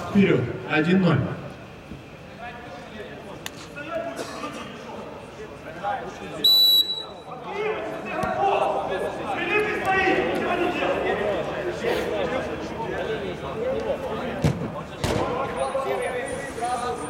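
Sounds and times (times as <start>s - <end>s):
referee's whistle: 6.4s - 7.3s.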